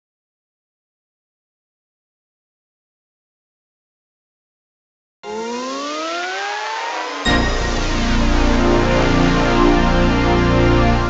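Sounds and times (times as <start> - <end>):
rising whoosh tone: 5.2 - 9.3.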